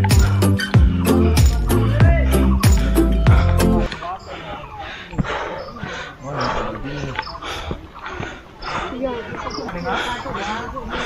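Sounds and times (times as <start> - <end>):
man breathing hard: 0.0 - 1.4, 2.2 - 11.0
faint voices: 1.2 - 11.0.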